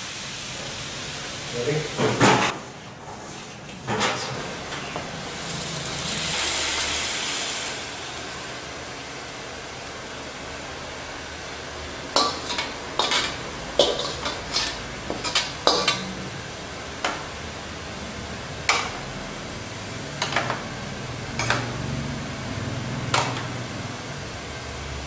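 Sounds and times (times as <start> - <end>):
food sizzling: 0.0 - 2.5, 5.0 - 25.0
metal ladle scraping wok: 12.1 - 16.4, 21.4 - 21.8.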